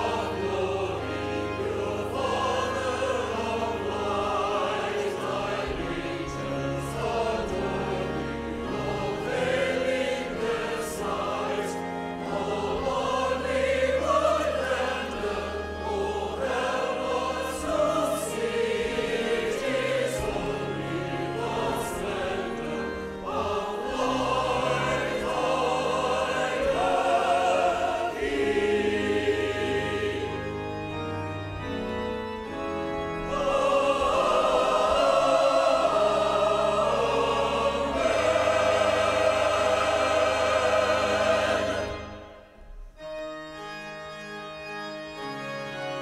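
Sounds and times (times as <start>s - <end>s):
choir singing an anthem: 0.0s - 31.8s, 32.5s - 42.7s.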